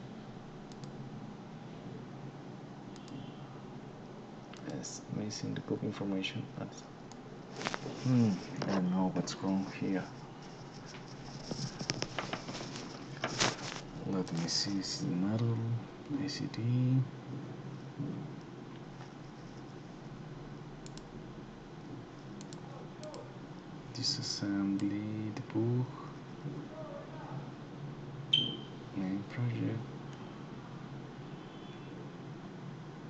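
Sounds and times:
computer mouse clicking: 0.7s - 1.0s, 2.9s - 3.3s, 4.4s - 4.8s, 20.8s - 21.1s, 22.4s - 23.2s, 24.8s - 25.0s
short high-pitched ping: 28.3s - 28.7s.

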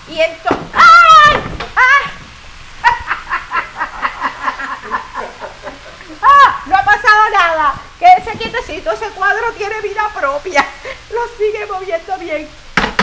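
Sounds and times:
woman laughing: 2.8s - 6.7s.

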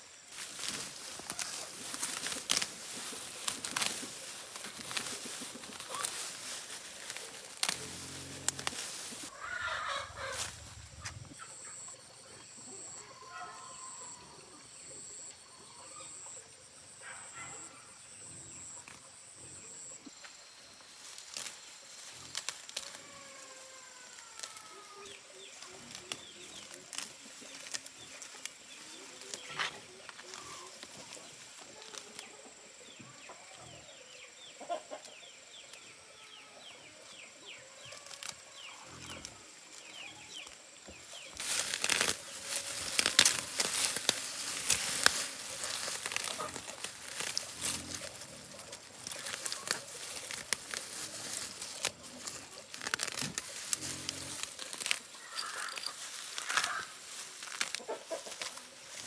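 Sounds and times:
weeds being pulled and torn: 0.3s - 11.4s, 20.9s - 32.4s, 37.1s - 59.0s
roots snapping: 0.4s - 11.2s, 41.2s - 59.0s.

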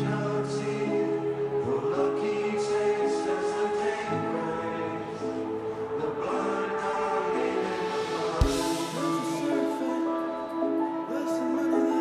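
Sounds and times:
live band sustained chords: 0.0s - 12.0s
heavy drum hit: 8.4s - 9.1s.

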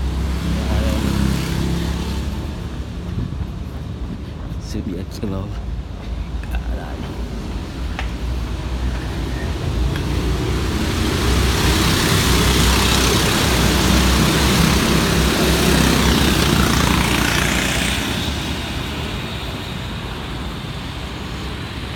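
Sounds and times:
go-kart engines passing: 0.0s - 4.2s, 8.1s - 21.9s.

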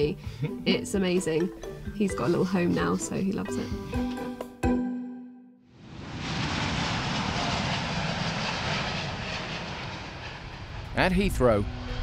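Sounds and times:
jet engines at takeoff: 5.8s - 12.0s.

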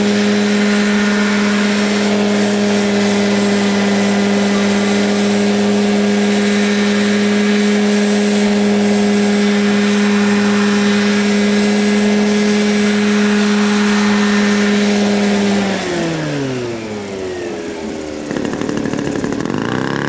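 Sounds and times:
model helicopter hovering: 0.0s - 20.0s
small engine pulsing: 0.0s - 20.0s.

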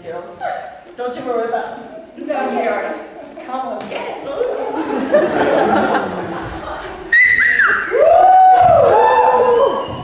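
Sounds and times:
loud whistling: 7.1s - 8.2s, 9.1s - 10.0s.

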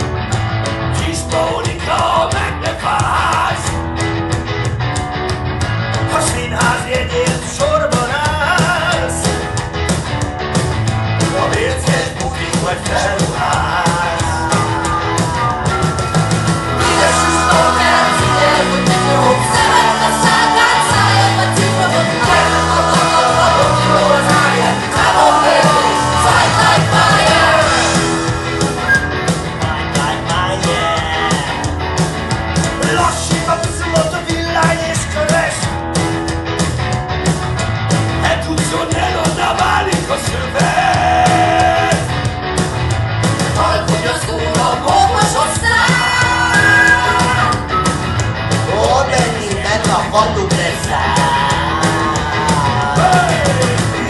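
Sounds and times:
rock guitar chords: 0.0s - 54.0s
group singing and shouting: 0.8s - 3.9s, 11.2s - 35.7s, 38.2s - 42.4s, 43.3s - 54.0s.

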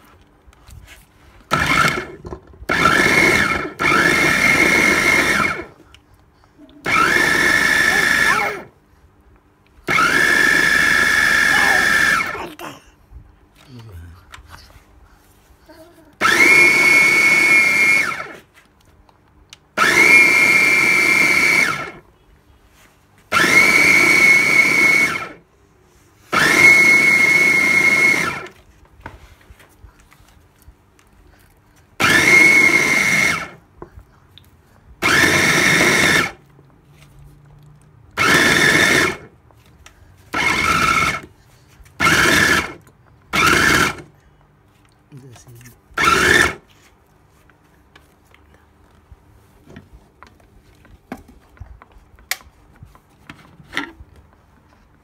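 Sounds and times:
blender motor whine: 1.5s - 5.7s, 6.8s - 8.7s, 9.9s - 12.4s, 16.2s - 18.4s, 19.8s - 22.0s, 23.3s - 25.4s, 26.3s - 28.6s, 32.0s - 33.6s, 35.0s - 36.4s, 38.2s - 39.3s, 40.3s - 41.3s, 42.0s - 44.1s, 46.0s - 46.7s.

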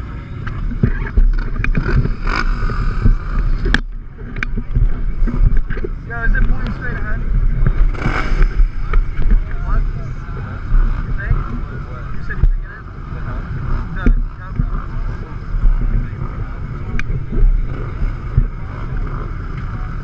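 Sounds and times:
engines idling: 0.0s - 20.0s.

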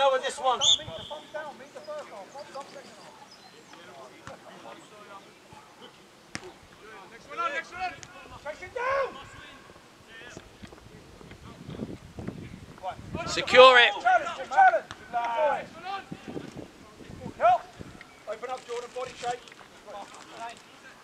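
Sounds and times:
distant players shouting: 6.3s - 10.4s, 13.2s - 16.5s.

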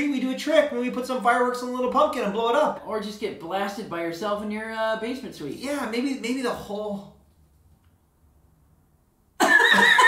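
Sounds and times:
men laughing loudly: 9.4s - 10.0s.

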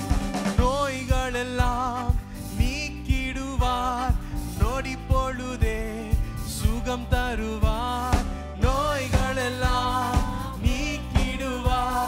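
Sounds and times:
instrumental accompaniment with thumping beat: 0.0s - 12.0s
man singing into a microphone: 0.0s - 12.0s.

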